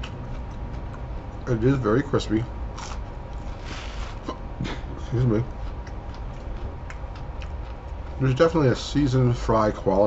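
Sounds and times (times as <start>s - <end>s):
man speaking: 1.4s - 2.5s, 5.0s - 5.5s, 8.2s - 10.0s
person eating crispy fries: 2.7s - 8.6s.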